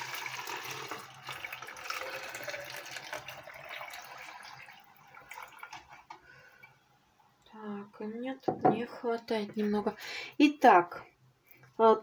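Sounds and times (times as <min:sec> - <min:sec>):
liquid pouring into plastic bottle: 0:00.0 - 0:06.8
faint drips: 0:01.2 - 0:07.6, 0:11.4 - 0:11.8.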